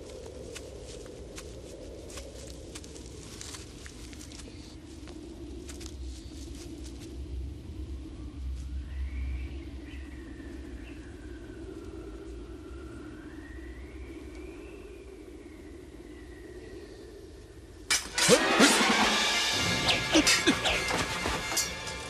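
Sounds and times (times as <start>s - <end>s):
wind howling: 0.0s - 18.1s, 19.2s - 22.0s
low rumble: 2.5s - 17.9s
sharp hit: 18.0s - 22.0s.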